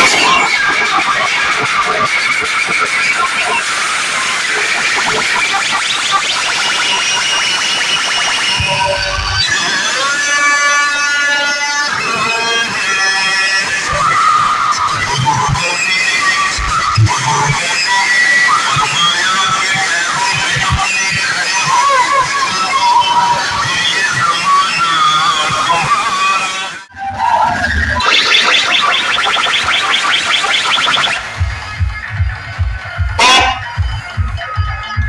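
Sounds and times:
crowd voices: 0:00.0 - 0:35.0
loud music through speakers: 0:00.0 - 0:35.0
steady pitched note: 0:33.0 - 0:34.0.

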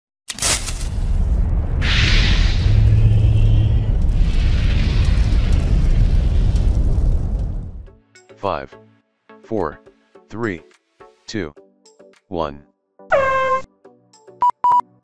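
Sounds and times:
sudden boom: 0:00.8 - 0:08.0
loud deep rumble: 0:00.9 - 0:08.0
hissing swells: 0:01.4 - 0:07.8.

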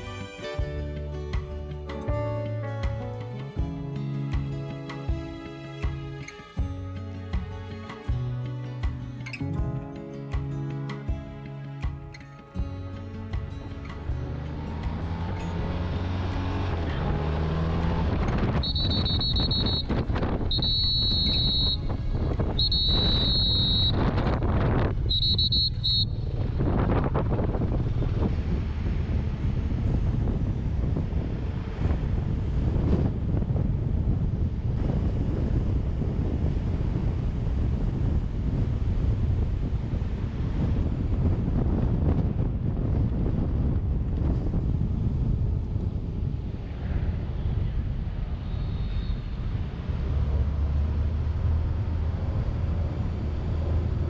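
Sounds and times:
wind buffeting microphone: 0:13.1 - 0:54.0
motorcycle riding at low speed: 0:13.2 - 0:54.0.

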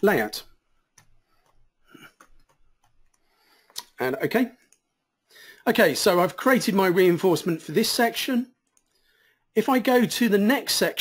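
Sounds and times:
computer keyboard keystrokes: 0:01.0 - 0:03.3.

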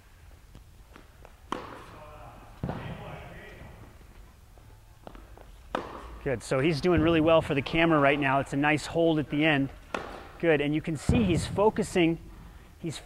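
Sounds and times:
footfalls on court: 0:00.9 - 0:02.0
racket hitting tennis ball: 0:00.9 - 0:04.0, 0:05.0 - 0:06.2, 0:09.7 - 0:10.4.

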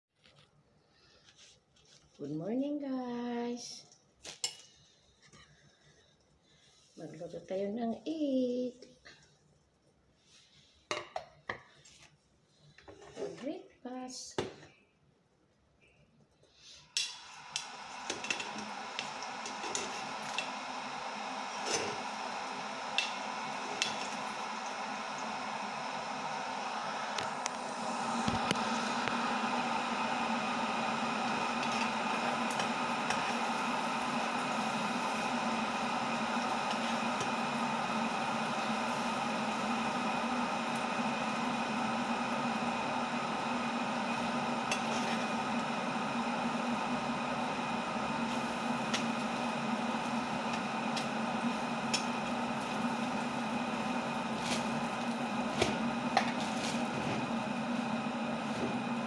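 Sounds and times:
mechanical hum: 0:11.8 - 0:59.0
egg sizzling in a pot: 0:16.7 - 0:58.5.

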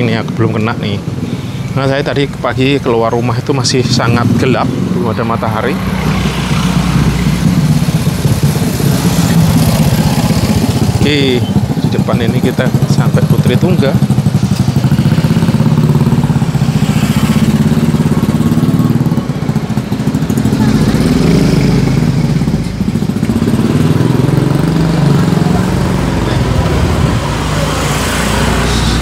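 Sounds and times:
motorcycle engine rumbling: 0:00.0 - 0:29.0.

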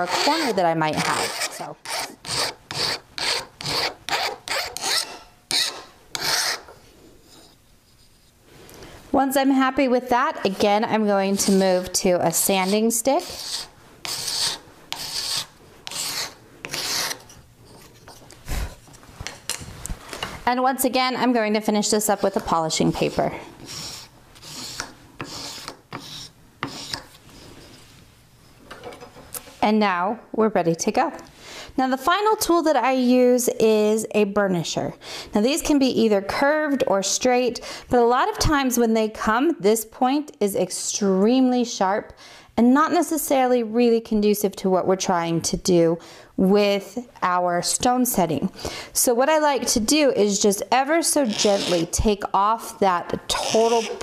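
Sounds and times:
hand file scraping metal: 0:00.0 - 0:07.6, 0:11.3 - 0:18.2, 0:23.0 - 0:27.8
faint room noise: 0:00.0 - 0:54.0.

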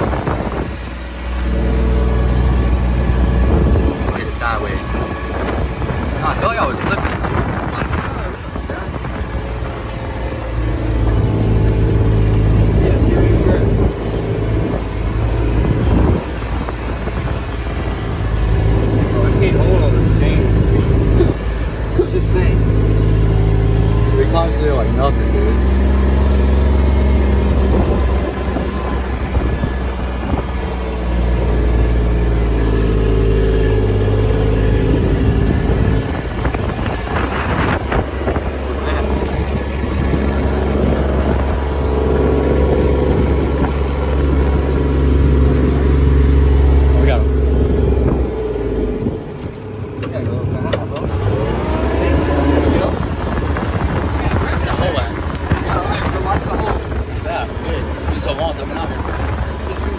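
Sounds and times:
diesel engine running under load: 0:00.0 - 0:59.9.

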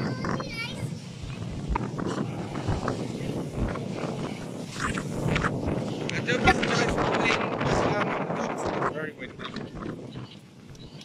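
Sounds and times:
low rumbling outdoor noise: 0:00.0 - 0:11.0
person laughing: 0:06.1 - 0:07.0.

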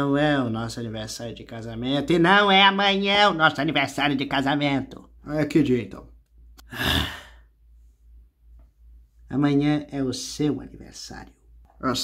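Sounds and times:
person sighing: 0:06.6 - 0:07.5.

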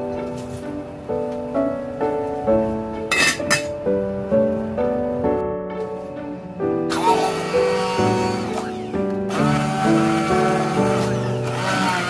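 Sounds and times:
instrumental background music: 0:00.0 - 0:12.0
pot lid clinking: 0:03.1 - 0:03.7.

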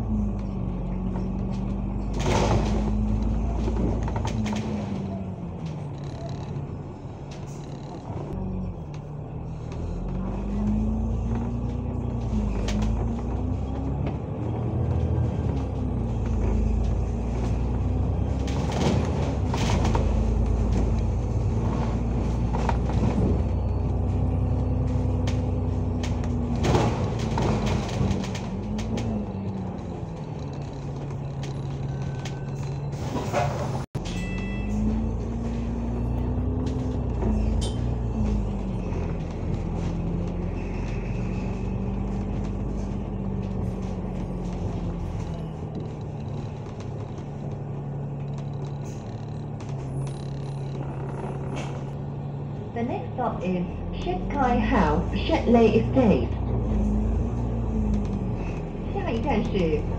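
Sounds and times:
bus engine hum: 0:00.0 - 0:59.9
low road rumble: 0:00.0 - 0:59.9.

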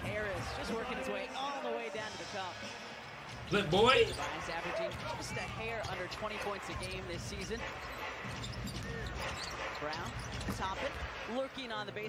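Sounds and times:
arena crowd noise: 0:00.0 - 0:12.0
basketball dribbled on hardwood: 0:08.2 - 0:11.2.

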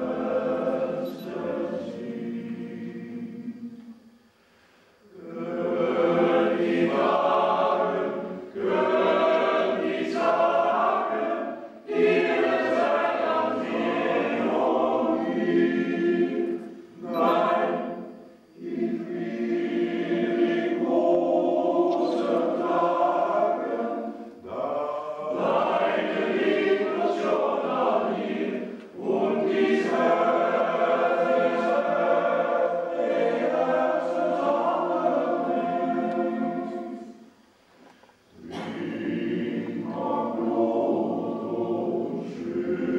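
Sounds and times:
men's choir singing: 0:00.0 - 0:04.0, 0:05.1 - 0:37.4, 0:38.3 - 0:42.9.

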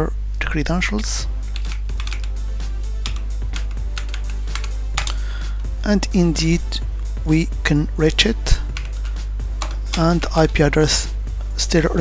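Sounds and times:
background music: 0:01.2 - 0:12.0
computer keyboard typing: 0:01.4 - 0:02.4, 0:03.0 - 0:05.2, 0:08.6 - 0:10.5.

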